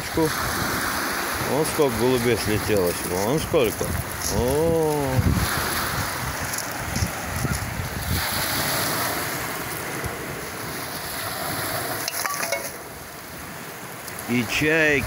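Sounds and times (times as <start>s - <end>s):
surf washing on pebble beach: 0.0s - 15.0s
wind buffeting microphone: 0.0s - 15.0s.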